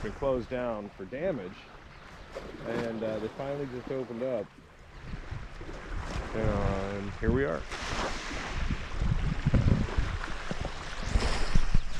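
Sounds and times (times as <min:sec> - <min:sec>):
small lake waves on shore: 0:00.0 - 0:11.9
wind buffeting microphone: 0:04.9 - 0:11.9.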